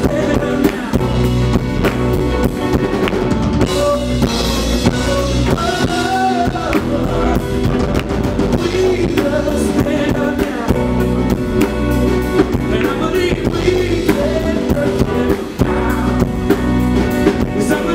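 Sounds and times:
bass: 0.0s - 17.9s
drum kit beat: 0.0s - 17.9s
electric guitar: 0.0s - 17.9s
electric keyboard: 0.0s - 17.9s.

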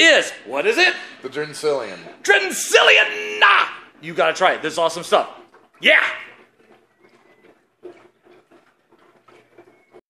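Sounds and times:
man shouting: 2.3s - 3.9s.

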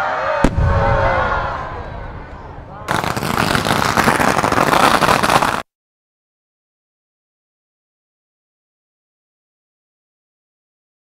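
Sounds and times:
firecrackers crackling: 2.8s - 5.7s.

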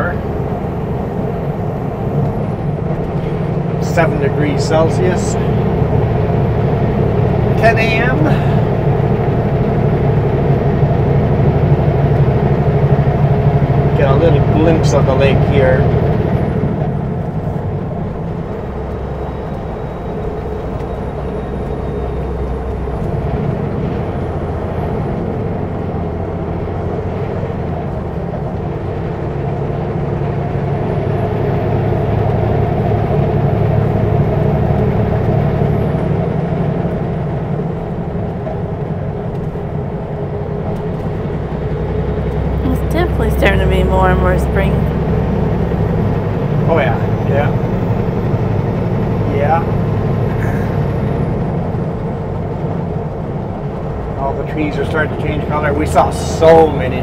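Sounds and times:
road noise: 0.0s - 57.0s
truck diesel engine droning: 0.0s - 57.0s.

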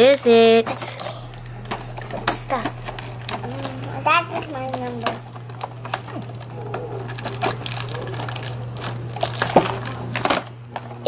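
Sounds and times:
steady low hum: 0.0s - 10.8s.

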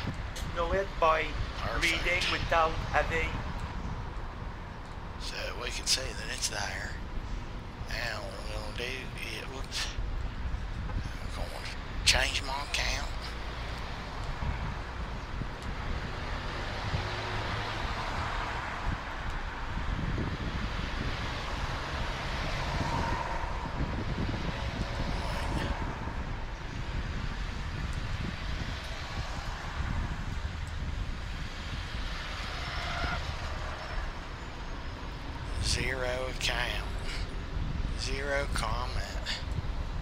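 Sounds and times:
low rumble: 17.9s - 32.1s.

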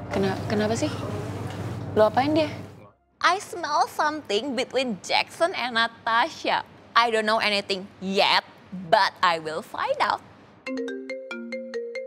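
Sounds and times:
mobile phone ringtone melody: 10.7s - 12.0s.

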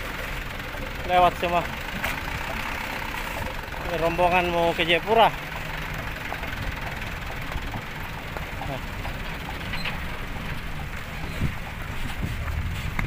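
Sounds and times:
diesel truck engines droning: 0.0s - 13.0s.

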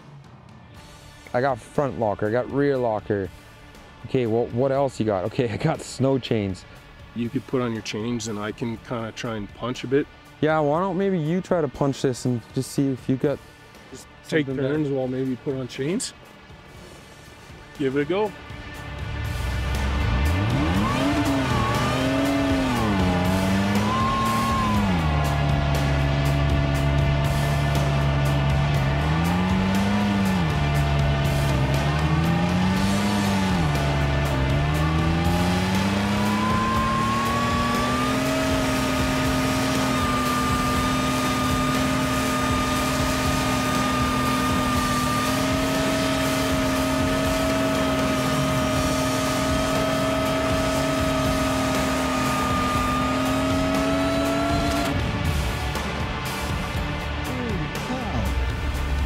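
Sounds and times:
truck engine revving: 18.4s - 59.0s
wheels spinning in snow: 20.7s - 25.9s, 28.6s - 55.0s.

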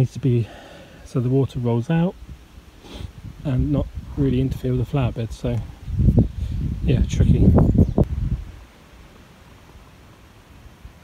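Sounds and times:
faint low rumble and hiss: 0.0s - 11.0s.

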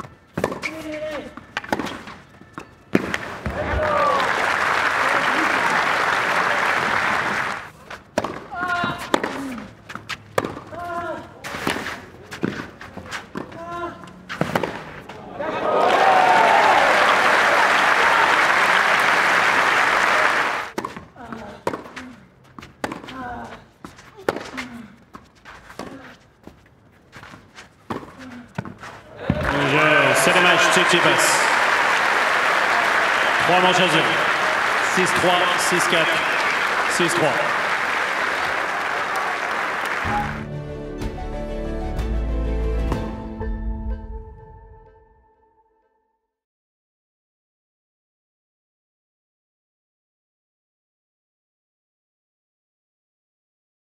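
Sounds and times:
racket striking tennis ball: 0.0s - 3.6s, 8.1s - 13.6s, 14.3s - 15.0s, 20.8s - 22.0s, 22.6s - 23.2s, 24.2s - 24.8s
crowd cheering and applause: 3.4s - 7.7s, 15.2s - 20.7s, 29.1s - 40.7s.

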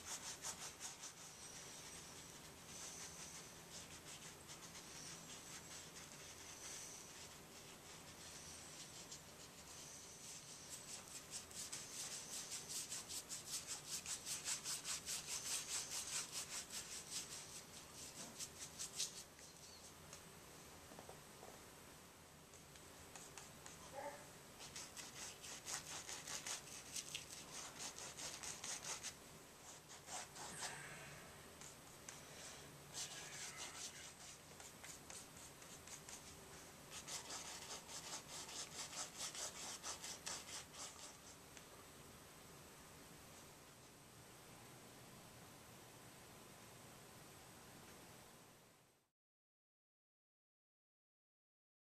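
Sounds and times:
paintbrush scrubbing canvas: 0.0s - 20.0s, 24.6s - 30.7s, 31.6s - 41.4s.

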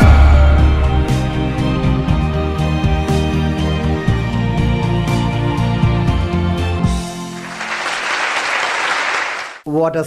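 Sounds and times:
intro music: 0.0s - 8.4s
audience applauding: 7.2s - 9.6s.

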